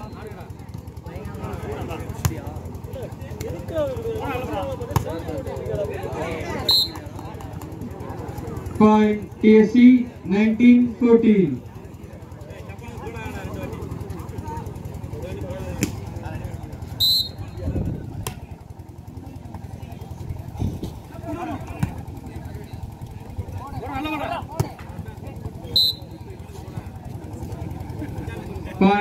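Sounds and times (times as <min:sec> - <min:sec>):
spectators murmuring and shouting: 0:00.0 - 0:29.0
referee whistle blasts: 0:06.6 - 0:07.0, 0:17.0 - 0:17.6, 0:25.7 - 0:26.2.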